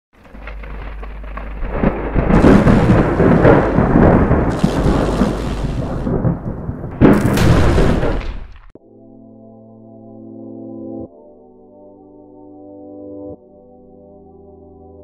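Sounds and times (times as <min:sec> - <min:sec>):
rain hissing: 0:00.2 - 0:06.8
thunder rumbling: 0:00.2 - 0:08.8
loud thunder crack: 0:00.3 - 0:08.8.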